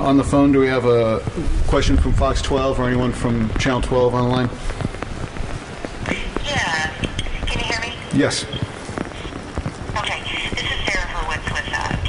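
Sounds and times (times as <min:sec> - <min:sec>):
person speaking over phone line: 0:06.1 - 0:09.3, 0:10.0 - 0:12.0.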